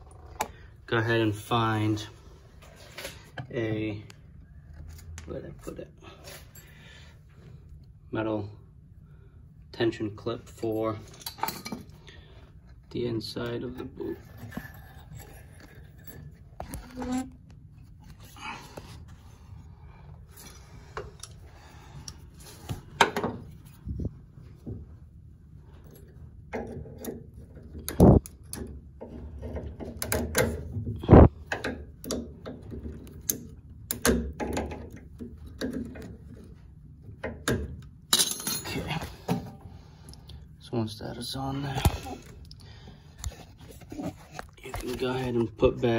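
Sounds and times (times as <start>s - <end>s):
low steady hum: 0.0s - 45.9s.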